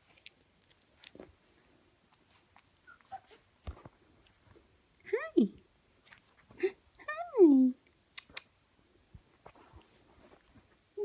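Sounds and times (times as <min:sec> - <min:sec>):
puppies squeaking: 0:02.8 - 0:03.5.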